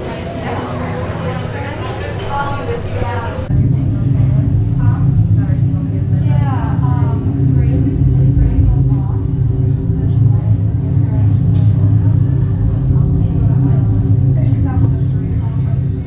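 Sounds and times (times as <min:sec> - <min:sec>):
indistinct voices: 0:00.0 - 0:16.0
steady low rumble: 0:03.4 - 0:16.0.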